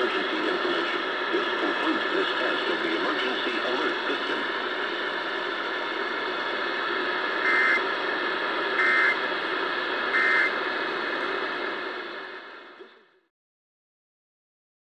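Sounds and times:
radio hiss: 0.0 - 13.3
alert data tone bursts: 7.4 - 7.8, 8.8 - 9.2, 10.2 - 10.5.

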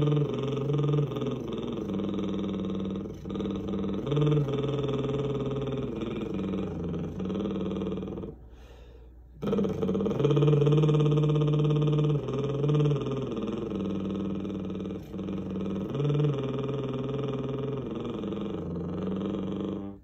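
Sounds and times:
man singing wordless melody: 0.0 - 8.4, 9.4 - 20.0.

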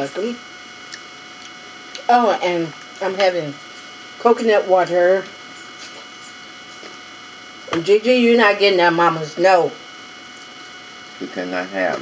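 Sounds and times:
woman speaking: 0.0 - 0.4, 2.0 - 3.6, 4.2 - 5.3, 7.7 - 9.8
electrical hum: 0.0 - 12.0
faint high whine: 0.0 - 12.0.

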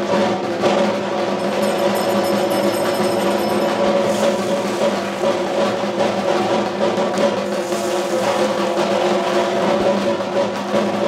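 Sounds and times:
drumming and percussion: 0.0 - 11.0
held ringing tones: 1.3 - 5.0.

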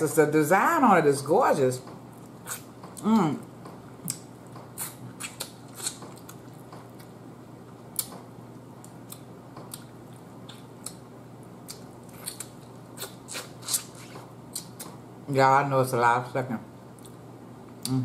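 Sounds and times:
chewing and lip smacking: 4.0 - 7.2, 8.8 - 11.0, 11.6 - 14.9.

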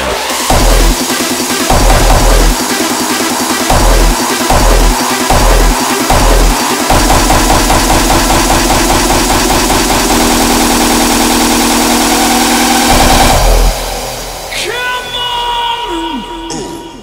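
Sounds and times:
heavy distorted kicks: 0.4 - 14.5
drum roll: 0.4 - 14.6.

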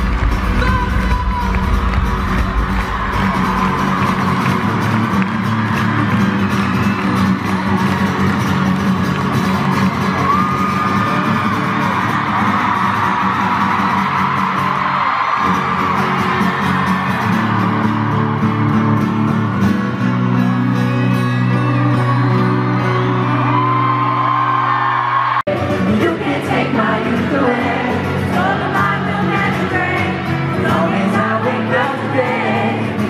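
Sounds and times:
deep bass: 0.0 - 5.7
amplified acoustic guitar: 0.0 - 33.0
crowd screaming and whooping: 0.0 - 33.0.

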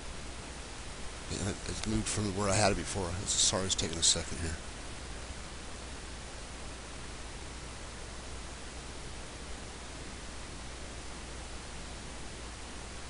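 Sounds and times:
low hum: 0.0 - 13.0
steady background hiss: 0.0 - 13.0.

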